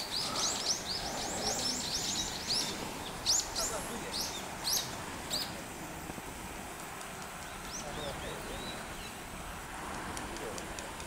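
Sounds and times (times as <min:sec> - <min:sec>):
small bird chirping: 0:00.0 - 0:05.6
steady outdoor hiss: 0:00.0 - 0:11.0.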